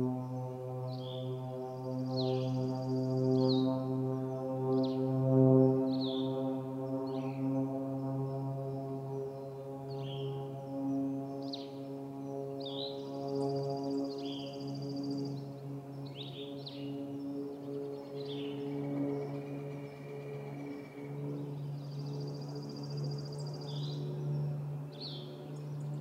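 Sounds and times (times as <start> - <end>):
small forest birds calling: 0.0 - 26.0
steady low hum: 0.0 - 26.0.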